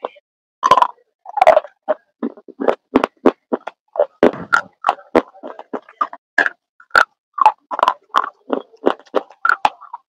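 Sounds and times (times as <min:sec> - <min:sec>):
person chewing crunchy food: 0:00.6 - 0:10.0.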